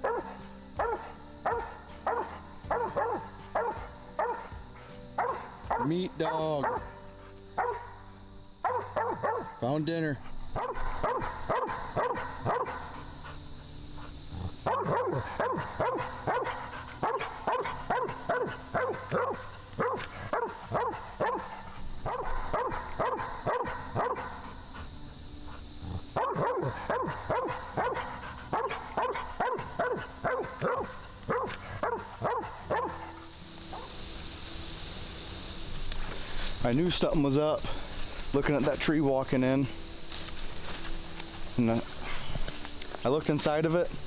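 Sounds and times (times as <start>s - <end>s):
dog barking: 0.0s - 4.6s, 5.2s - 8.0s, 8.6s - 9.6s, 10.6s - 13.1s, 14.6s - 24.6s, 26.0s - 33.9s.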